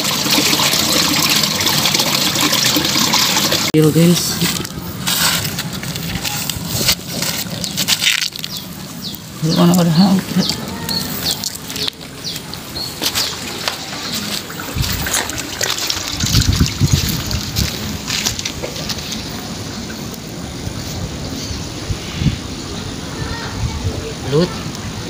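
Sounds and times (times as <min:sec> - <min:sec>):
water trickling and sloshing: 0:00.0 - 0:21.4.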